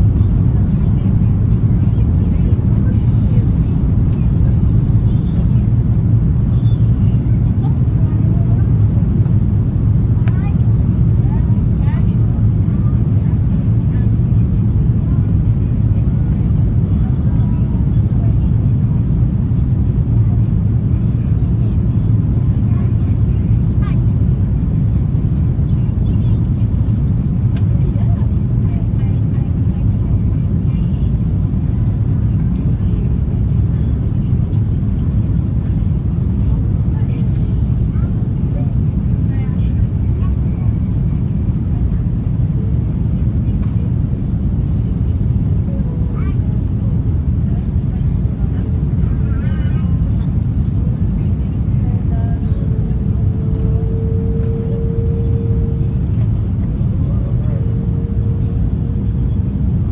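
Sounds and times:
airliner cabin engine rumble: 0.0 - 59.9.

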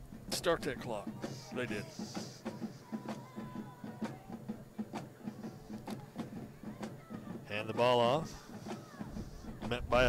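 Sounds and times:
quick drum beat: 0.0 - 10.0
stadium crowd noise: 0.2 - 10.0.

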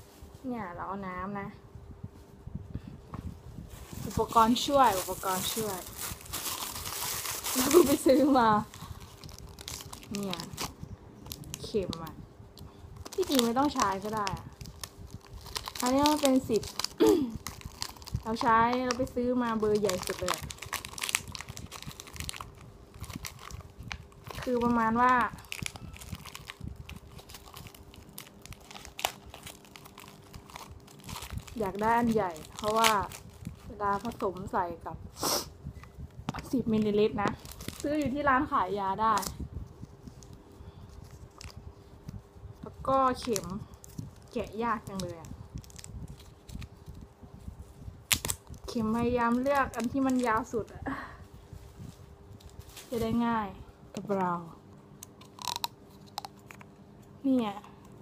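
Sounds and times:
plastic packaging crinkling: 3.7 - 12.1, 13.0 - 34.8, 36.4 - 42.2, 42.8 - 50.8, 55.2 - 56.6.

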